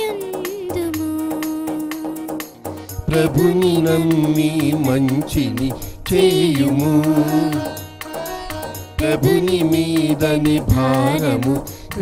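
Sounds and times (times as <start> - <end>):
keyboard accompaniment: 0.0 - 12.0
light percussion rhythm: 0.0 - 12.0.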